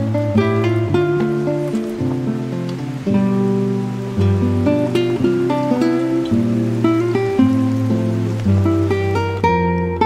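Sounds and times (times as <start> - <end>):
acoustic guitar melody: 0.0 - 10.0.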